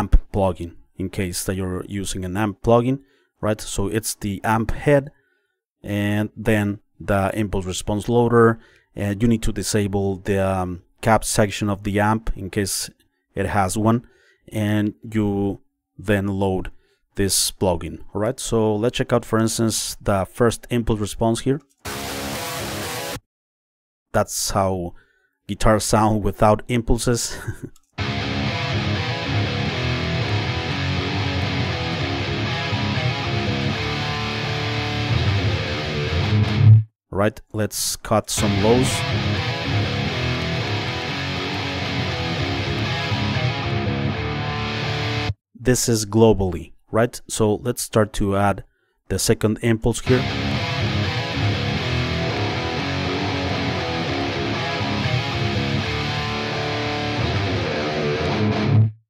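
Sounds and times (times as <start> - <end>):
electric guitar playing: 21.8 - 23.2, 28.0 - 36.8, 38.4 - 45.4, 50.0 - 59.0.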